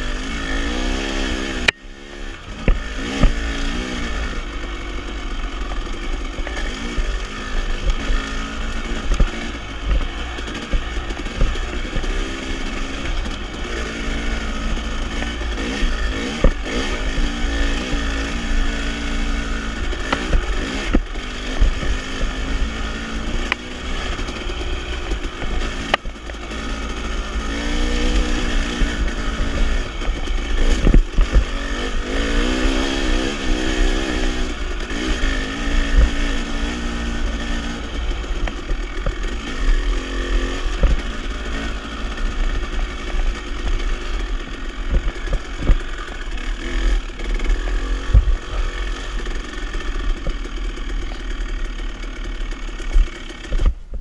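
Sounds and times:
dirt bike engine: 0.0 - 54.0.

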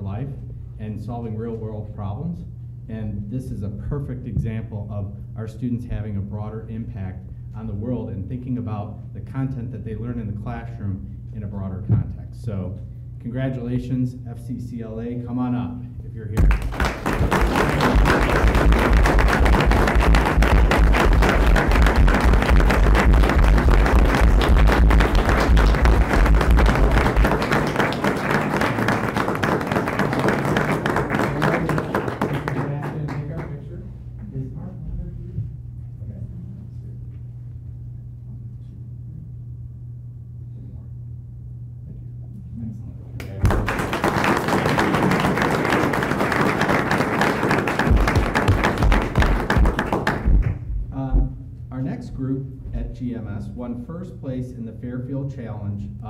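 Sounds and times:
crowd clapping: 16.4 - 33.6, 43.2 - 50.7
audience applause: 16.5 - 33.5, 43.4 - 50.5.

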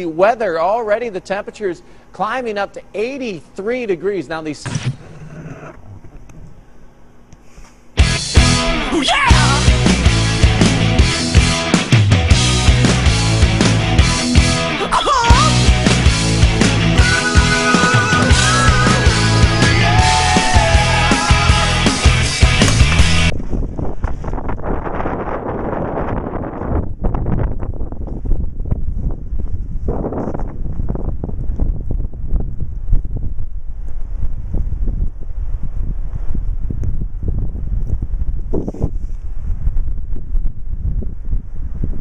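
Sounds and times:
music: 8.0 - 23.3
blizzard wind buffeting microphone: 15.5 - 42.0.

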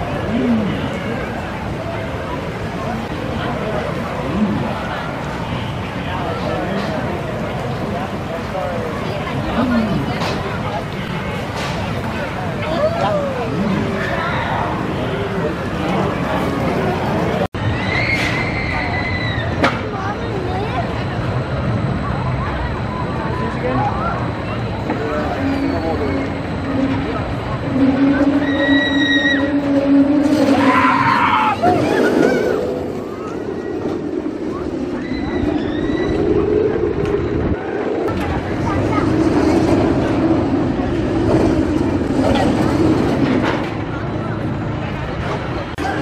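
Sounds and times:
roller coaster rumbling on track: 0.0 - 46.0.

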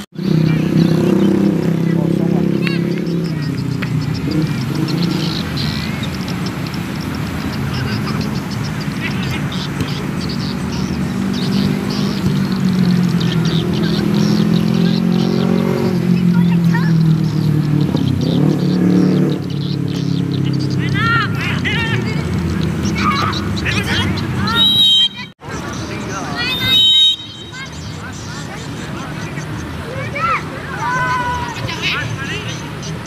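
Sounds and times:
engine hum: 0.0 - 33.0
people shouting: 20.8 - 25.4, 29.8 - 32.6.

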